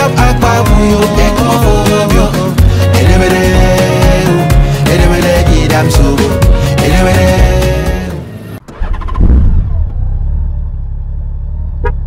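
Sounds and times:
music: 0:00.0 - 0:08.6
motorcycle engine rumbling: 0:06.9 - 0:12.0.

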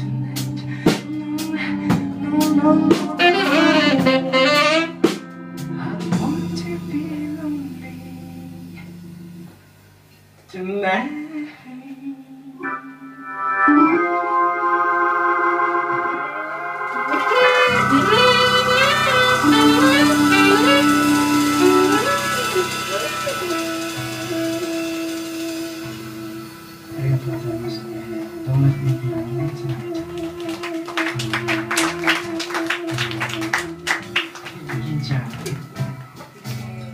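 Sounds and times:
organ-like keyboard chords: 0:00.0 - 0:10.3, 0:12.6 - 0:36.9
soul-jazz band playing: 0:00.0 - 0:10.4, 0:12.6 - 0:36.9.

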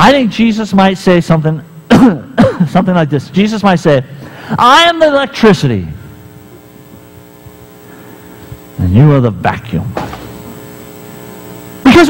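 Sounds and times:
electrical mains hum: 0:00.0 - 0:12.0
man speaking: 0:02.6 - 0:06.1, 0:08.8 - 0:10.0.

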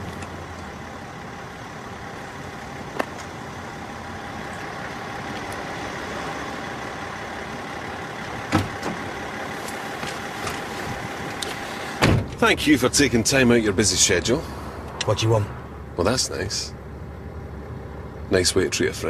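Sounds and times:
motor vehicle running: 0:00.0 - 0:19.0.

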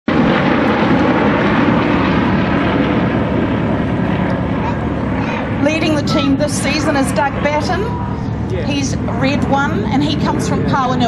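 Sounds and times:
propeller planes droning overhead: 0:00.1 - 0:11.0.

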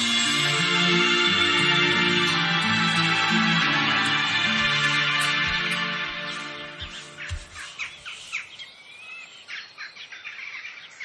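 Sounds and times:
songbirds chirping: 0:01.2 - 0:11.0.

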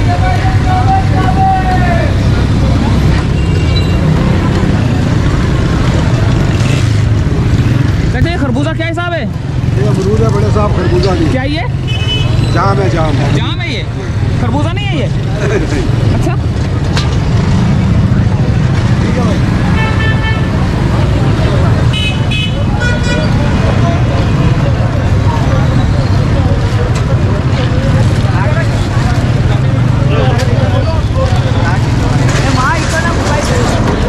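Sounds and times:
background chatter: 0:00.0 - 0:34.0
traffic engine rumble: 0:00.0 - 0:34.0
vehicle horn tooting: 0:21.9 - 0:23.4.

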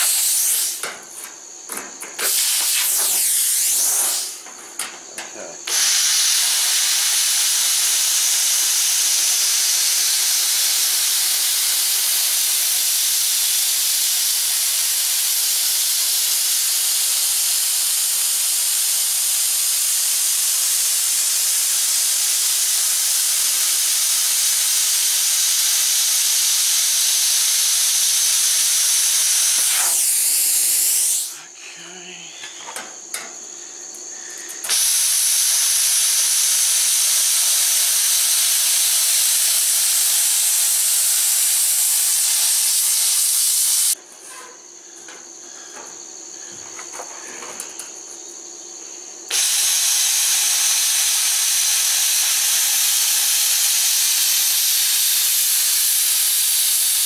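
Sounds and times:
plasma cutter hissing: 0:00.0 - 0:32.1, 0:33.0 - 0:44.0, 0:49.3 - 0:57.0.

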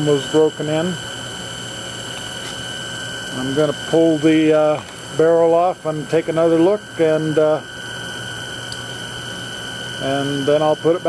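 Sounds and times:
faint high whine: 0:00.0 - 0:11.0
motor rig humming and hissing: 0:00.0 - 0:11.0.

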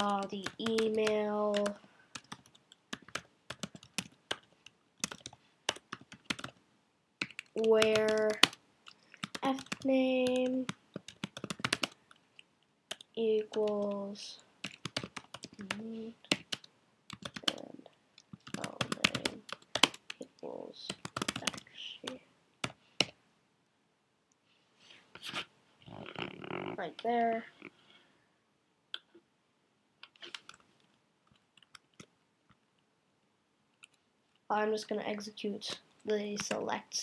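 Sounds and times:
computer keyboard typing: 0:00.0 - 0:06.6, 0:07.2 - 0:23.2, 0:30.0 - 0:30.6, 0:31.6 - 0:32.1.

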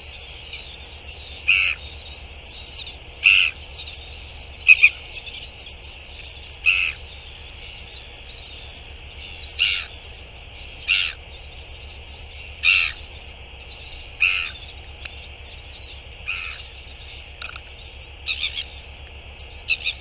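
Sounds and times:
faint high bird chirping: 0:00.0 - 0:20.0
loud bird call: 0:00.0 - 0:20.0.

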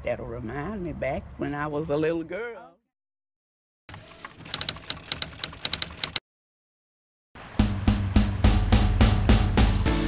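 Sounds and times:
typewriter key clatter: 0:04.2 - 0:06.2.

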